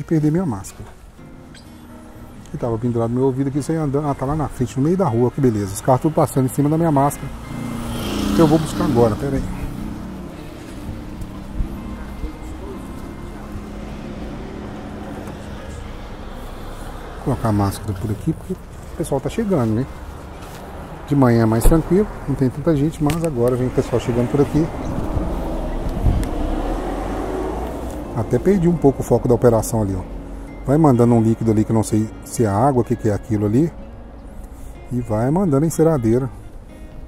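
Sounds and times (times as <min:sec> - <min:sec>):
passing vehicle engines: 0:00.0 - 0:37.0.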